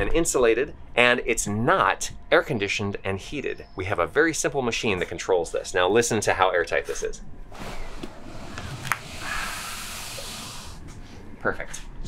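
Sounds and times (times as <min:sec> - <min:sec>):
air hissing through door gap: 0:07.5 - 0:11.1.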